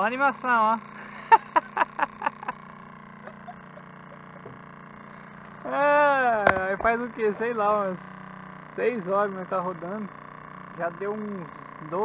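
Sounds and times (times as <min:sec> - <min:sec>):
steady low hum: 0:00.0 - 0:12.0
man laughing loudly: 0:01.0 - 0:04.6.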